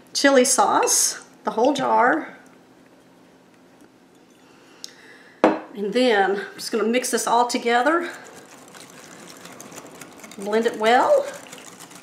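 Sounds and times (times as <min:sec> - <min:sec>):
whisk beating sauce in bowl: 0:07.2 - 0:12.0.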